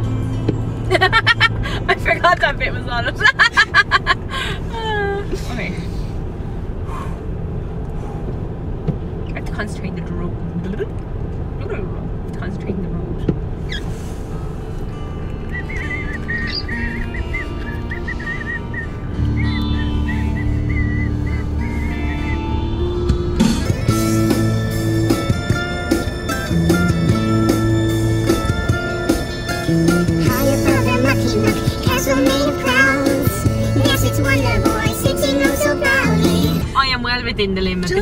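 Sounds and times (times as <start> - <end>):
rock music on car stereo: 0.0 - 1.7, 15.1 - 36.8.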